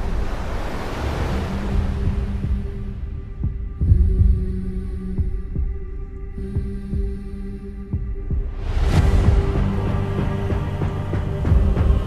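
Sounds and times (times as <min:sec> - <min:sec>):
low drone: 0:00.0 - 0:12.0
soft heartbeat-like thuds: 0:01.8 - 0:12.0.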